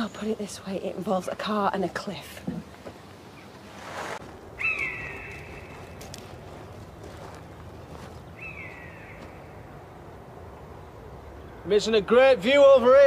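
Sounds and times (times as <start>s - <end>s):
outdoor background noise: 0.0s - 13.0s
high bird calls: 4.6s - 9.7s.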